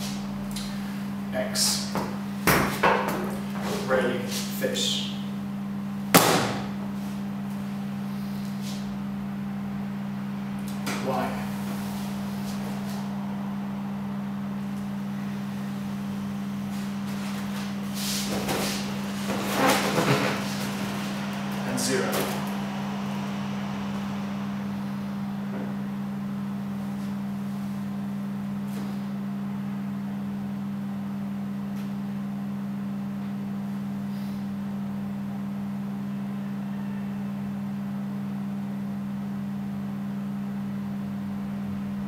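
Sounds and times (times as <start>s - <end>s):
fan hiss: 0.0s - 42.0s
projector humming: 0.0s - 42.0s.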